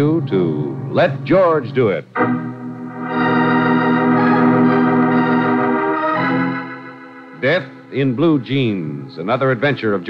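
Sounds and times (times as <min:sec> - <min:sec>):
sustained organ chord: 0:00.0 - 0:10.0.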